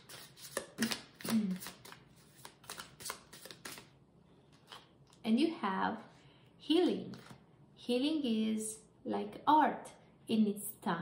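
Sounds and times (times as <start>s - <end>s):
cards being shuffled: 0.0s - 3.9s, 7.1s - 7.4s.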